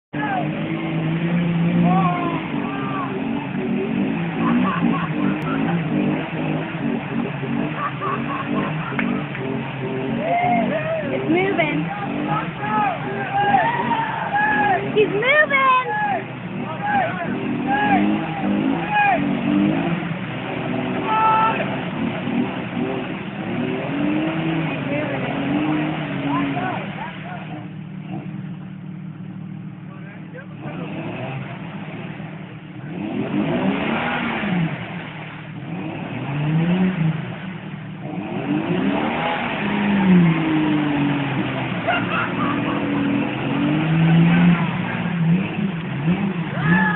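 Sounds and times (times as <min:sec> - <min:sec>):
engine revving: 0:00.1 - 0:46.9
mud churning: 0:00.2 - 0:28.4, 0:30.6 - 0:46.9.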